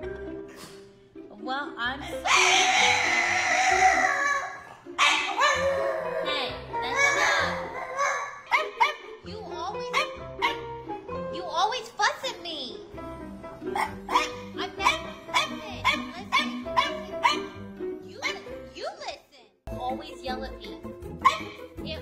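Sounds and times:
background music: 0:00.0 - 0:22.0
dog barking and grumbling: 0:02.2 - 0:09.0, 0:13.7 - 0:17.6
dog yelping: 0:02.2 - 0:09.2, 0:09.9 - 0:10.7, 0:13.7 - 0:17.6, 0:21.2 - 0:21.6.

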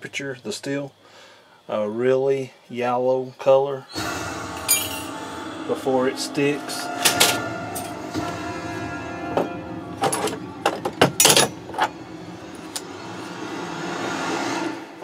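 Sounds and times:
background music sustained tones: 0:03.9 - 0:15.0.

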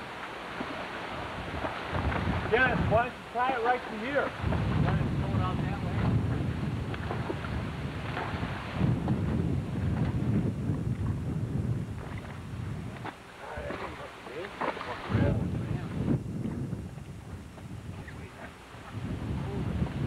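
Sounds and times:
wind buffeting microphone: 0:00.6 - 0:20.0.

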